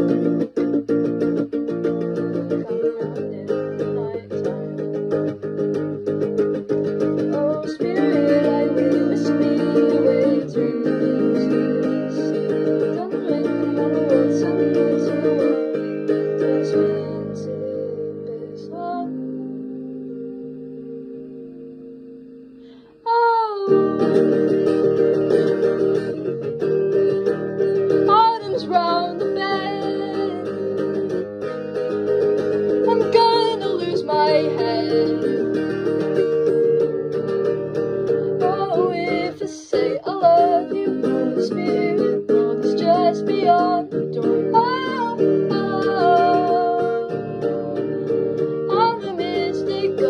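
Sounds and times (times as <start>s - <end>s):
guitar-led song: 0.0s - 50.0s.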